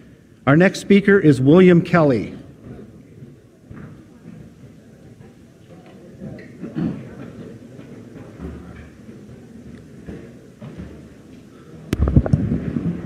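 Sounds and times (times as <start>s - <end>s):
low room noise: 0.0s - 13.0s
microphone handling thumps: 11.9s - 13.0s.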